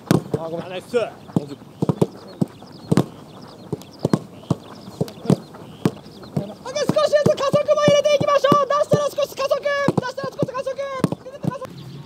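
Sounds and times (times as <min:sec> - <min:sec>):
footballs being kicked on grass: 0:00.0 - 0:11.7.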